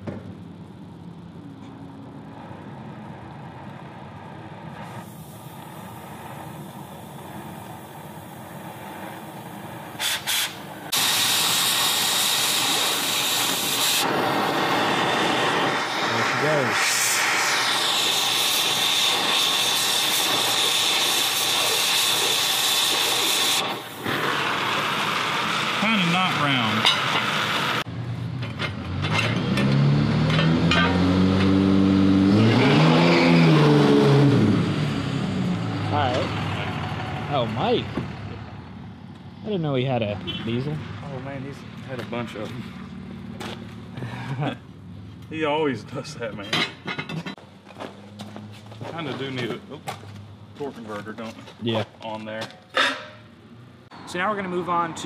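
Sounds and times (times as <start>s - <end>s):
cutting torch hissing: 3.5s - 27.9s
passing vehicle engine: 24.0s - 46.2s, 47.0s - 51.2s.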